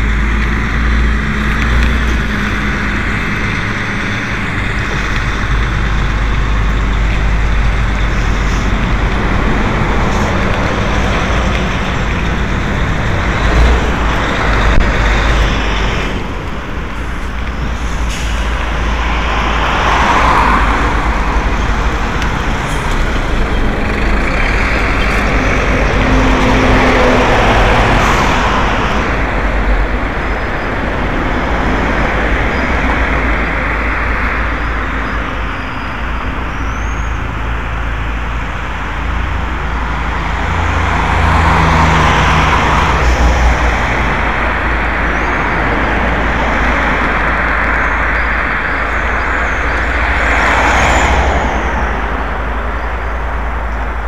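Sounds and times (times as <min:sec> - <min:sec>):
vehicle rumbling over gravel road: 0:00.0 - 0:54.0
vehicles passing: 0:00.0 - 0:54.0
wind buffeting microphone: 0:00.0 - 0:54.0.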